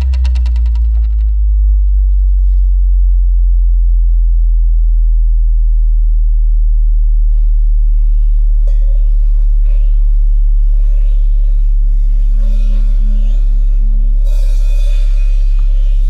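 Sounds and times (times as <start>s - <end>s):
deep electronic bass drone: 0.0s - 16.0s.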